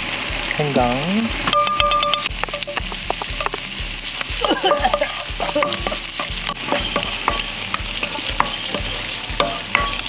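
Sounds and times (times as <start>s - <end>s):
oil sizzling in a frying pan: 0.0s - 10.0s.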